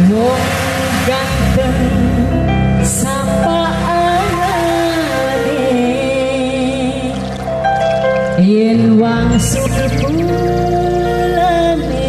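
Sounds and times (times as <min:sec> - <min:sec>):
rising pitch slide: 0:09.2 - 0:11.6.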